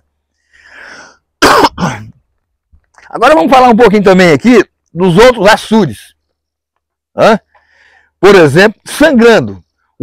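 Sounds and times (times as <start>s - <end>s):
man taking soft breath: 0.2s - 1.4s, 7.5s - 8.2s
man coughing: 1.4s - 2.2s
throat-clearing grunt: 1.4s - 2.2s.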